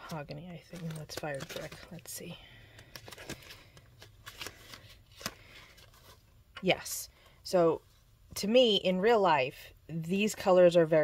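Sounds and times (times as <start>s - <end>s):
cards being flipped by hand: 0.1s - 2.1s, 2.7s - 6.2s.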